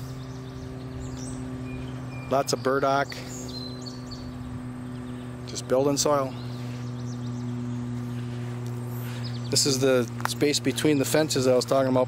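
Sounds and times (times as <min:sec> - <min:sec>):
high bird chirps: 0:00.0 - 0:05.5
steady low hum: 0:00.0 - 0:12.0.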